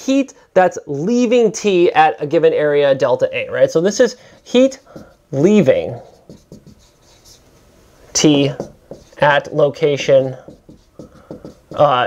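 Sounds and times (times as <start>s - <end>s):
marker writing on a whiteboard: 3.8s - 12.0s.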